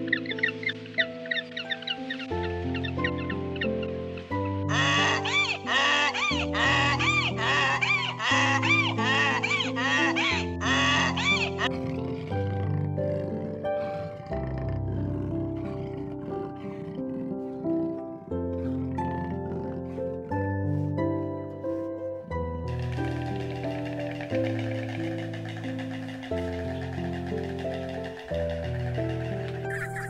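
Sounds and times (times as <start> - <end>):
background music: 0.0 - 30.0
donkey braying: 4.5 - 20.4, 22.7 - 30.0.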